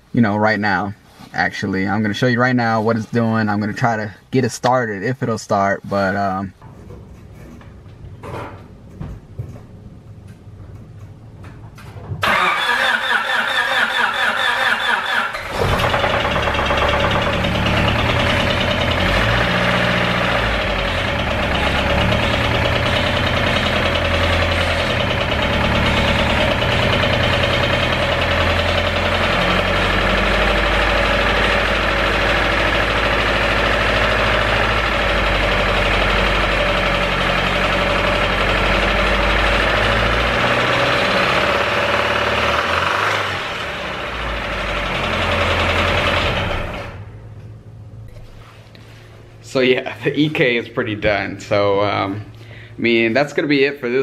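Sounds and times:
engine cranking on starter: 12.2s - 47.2s
engine running unevenly: 15.3s - 48.2s.

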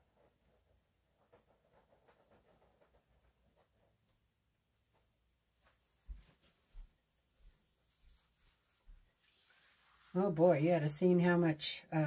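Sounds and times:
faint footsteps thumping: 5.0s - 9.1s.

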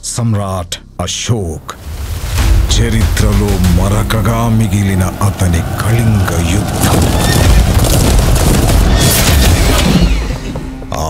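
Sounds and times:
heavy low rumble: 1.6s - 9.6s.

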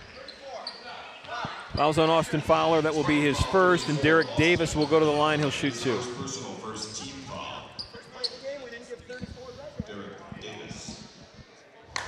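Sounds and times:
sneaker squeaks: 0.0s - 2.0s, 3.0s - 5.6s, 6.9s - 9.9s
footsteps on hardwood court: 7.8s - 11.8s.

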